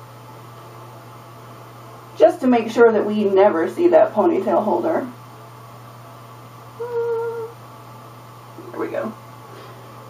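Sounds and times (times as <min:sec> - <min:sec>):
woman humming a note: 0:06.8 - 0:07.6.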